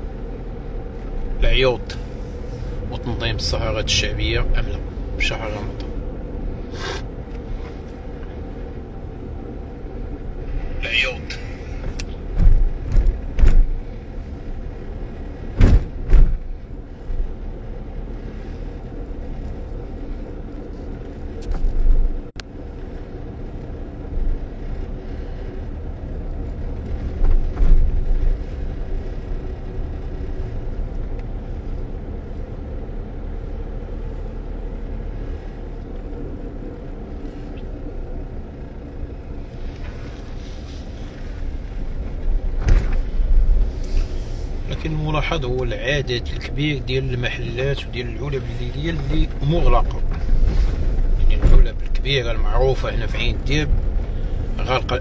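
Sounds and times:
car engine and tyres hum: 0.0 - 55.0
loud low thumps: 15.6 - 16.5.

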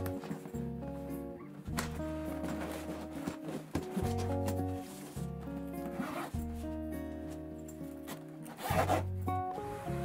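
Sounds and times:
background music: 0.0 - 10.0
bag material rubbing: 5.9 - 6.4, 8.5 - 9.0
bag zipper pulled: 5.9 - 6.5, 8.5 - 9.1.

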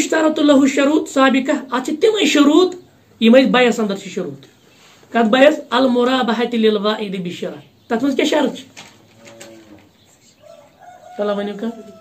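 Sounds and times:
rooster crowing: 9.2 - 12.0.

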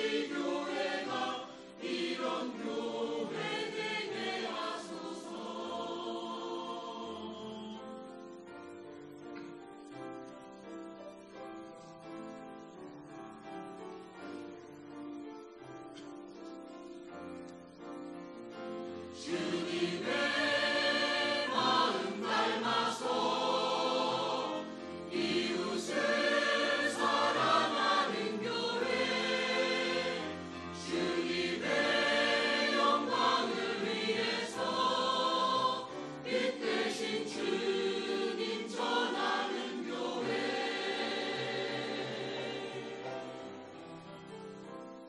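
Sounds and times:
choir singing a hymn: 0.0 - 10.8, 18.5 - 44.4.

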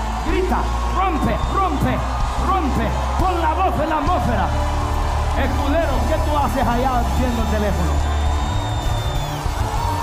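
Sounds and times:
deep steady bass: 0.0 - 10.0
worship band playing loud: 0.0 - 10.0.

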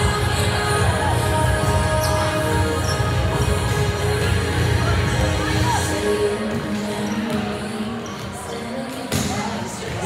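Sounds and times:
background music: 0.0 - 10.0
volleyballs hit and bouncing: 6.5 - 10.0.

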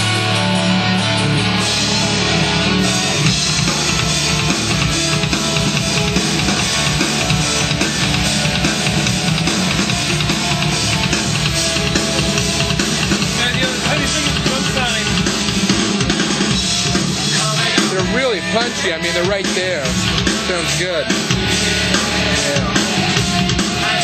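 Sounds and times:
loud rock music: 0.0 - 24.0.

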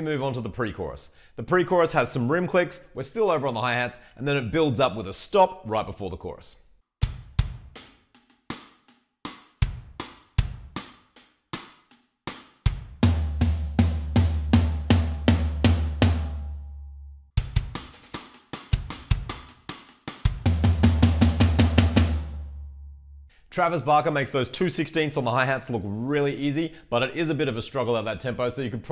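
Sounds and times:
electronic drum kit playing: 7.0 - 8.7, 9.3 - 11.7, 12.3 - 16.8, 17.4 - 22.7
snare and bass drum hits: 7.0 - 16.7, 17.4 - 22.5
rim clicks and hi-hat: 17.4 - 20.7.

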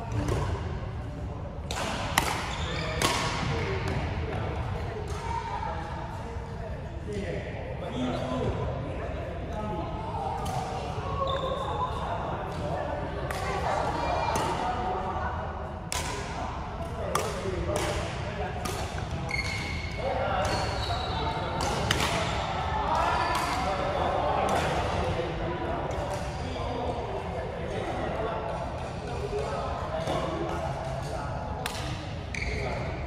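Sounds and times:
rackets hitting shuttlecock: 0.1 - 0.6, 1.7 - 4.0, 15.9 - 16.4, 17.1 - 19.8, 21.6 - 22.4, 23.3 - 23.7, 31.0 - 32.5
shoes squeaking on court floor: 2.5 - 3.1, 19.2 - 21.5, 32.3 - 32.9.

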